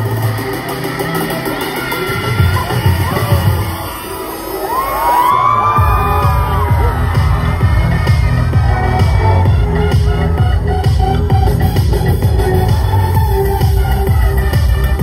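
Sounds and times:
crowd cheering: 0.0s - 15.0s
dance pop music over speakers: 0.0s - 15.0s
heavy bass beat: 0.0s - 15.0s.

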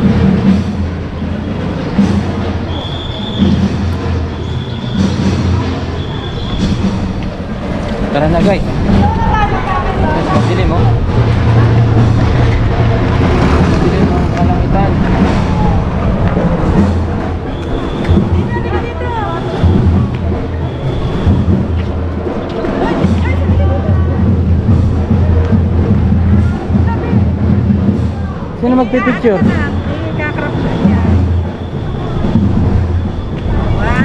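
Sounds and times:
people talking: 5.1s - 21.8s, 22.4s - 34.0s
wind buffeting microphone: 5.5s - 34.0s.

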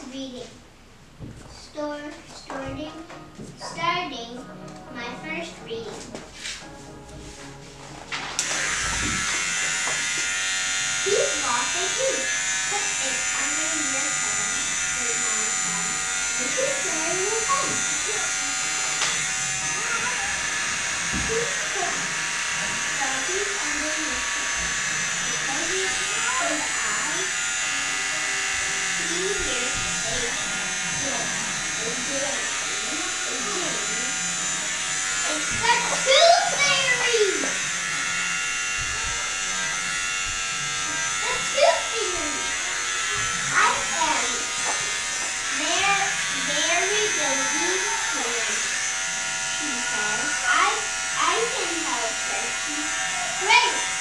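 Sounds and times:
electric hair clippers buzzing: 4.4s - 54.0s.

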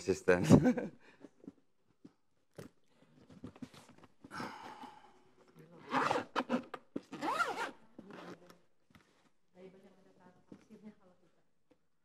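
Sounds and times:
zipper rasping: 5.6s - 8.6s.

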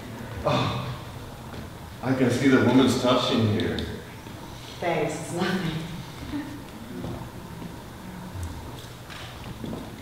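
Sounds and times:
hall room noise: 0.0s - 10.0s.

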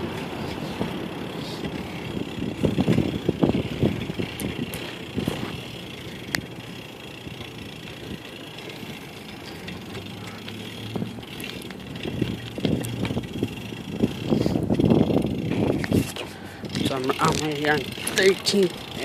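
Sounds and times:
street traffic: 0.0s - 19.0s
vehicle engine running: 0.0s - 19.0s.

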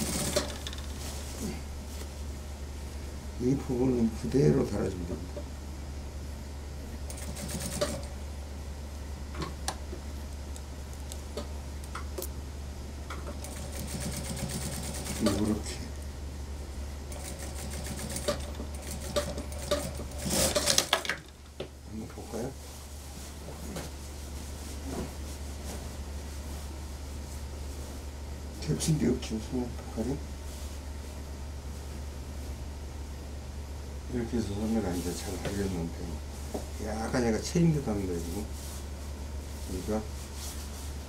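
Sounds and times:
sewing machine stitching: 0.0s - 0.8s, 7.1s - 8.1s, 13.4s - 15.6s, 17.1s - 20.9s
steady low hum: 0.0s - 41.0s.

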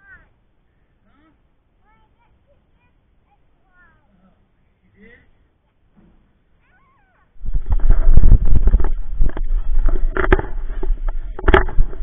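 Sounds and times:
wind: 0.0s - 12.0s.

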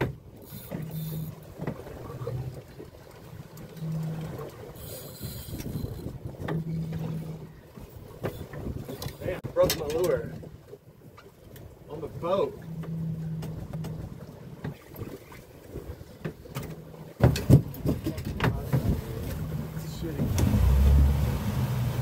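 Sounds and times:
water noise: 0.0s - 22.0s.

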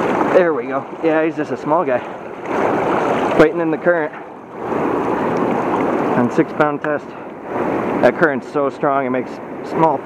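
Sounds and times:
river current rushing and splashing: 0.0s - 10.0s.

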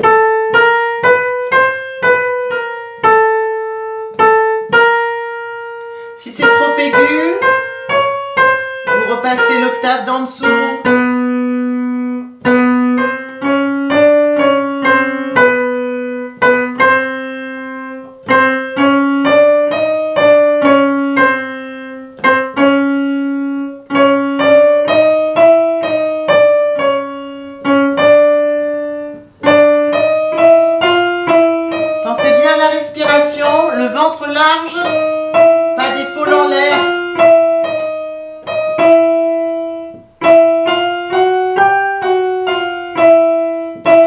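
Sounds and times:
electronic keyboard piano notes: 0.0s - 44.0s.

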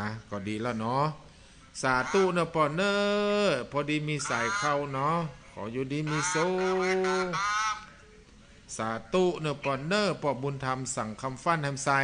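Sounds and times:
man holding a long note: 2.0s - 2.6s, 4.2s - 5.3s, 6.0s - 7.9s.

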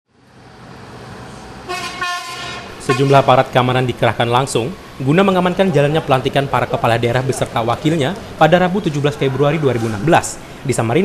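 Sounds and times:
road traffic noise: 0.1s - 11.0s
vehicle horn held tone: 1.7s - 3.1s.

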